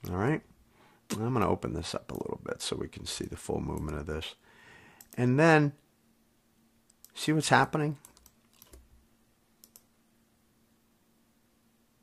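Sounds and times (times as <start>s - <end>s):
faint computer clicks: 8.0s - 8.9s, 9.6s - 9.9s.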